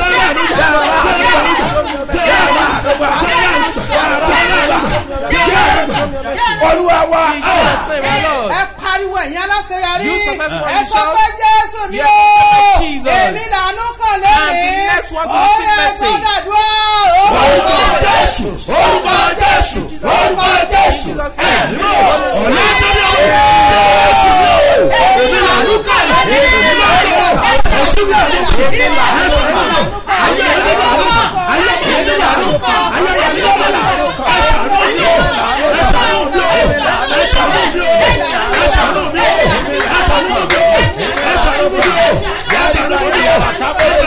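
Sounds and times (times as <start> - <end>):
crowd shouting: 0.0 - 8.8, 9.9 - 44.0
man shouting into microphone: 4.3 - 17.8.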